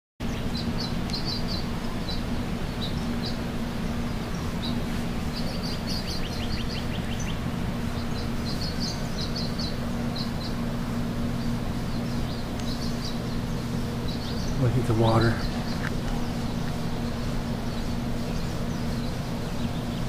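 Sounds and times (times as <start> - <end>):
birds chirping: 0.2 - 20.0
low outdoor rumble: 0.2 - 20.0
steady low hum: 0.2 - 20.0.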